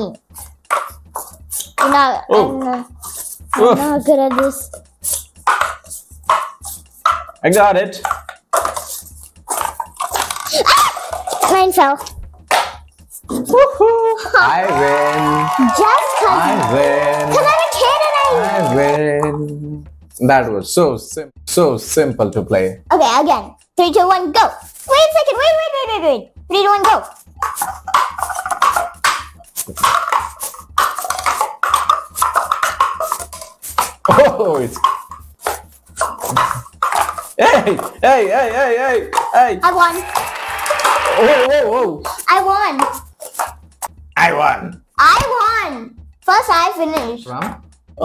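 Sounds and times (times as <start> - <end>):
paper cups being stacked: 3.0 - 7.4, 8.0 - 11.7, 27.0 - 38.0.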